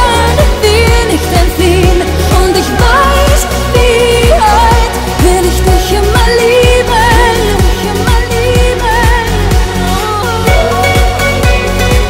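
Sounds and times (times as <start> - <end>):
backing track: 0.0 - 12.0
woman singing pop song: 0.0 - 12.0
kick drum beat: 10.5 - 12.0.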